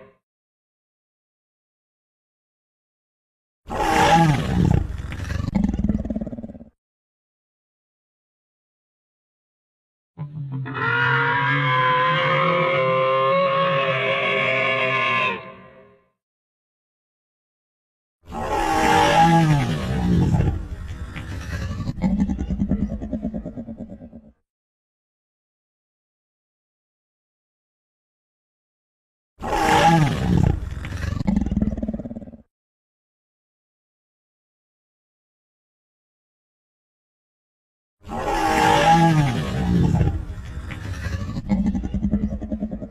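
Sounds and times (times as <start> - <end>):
dinosaur roar: 3.7 - 6.8, 10.2 - 16.0, 18.3 - 24.4, 29.4 - 32.5, 38.0 - 42.9.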